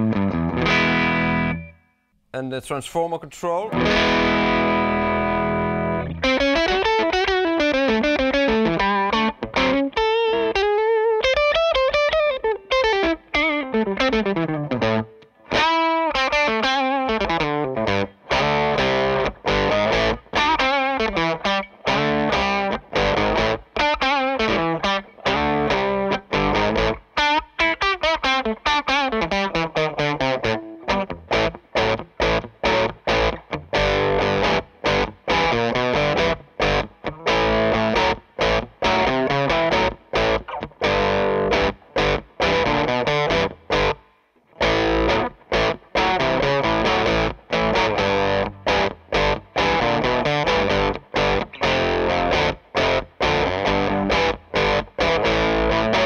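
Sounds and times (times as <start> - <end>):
electric guitar chord ringing: 0.0 - 1.9, 3.8 - 44.0, 44.6 - 56.0
electric guitar lead lines: 0.0 - 2.0, 3.7 - 56.0.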